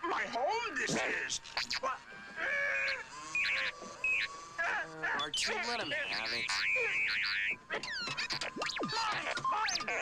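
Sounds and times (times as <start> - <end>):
robot electronic squeals and whistles: 0.6 - 10.0.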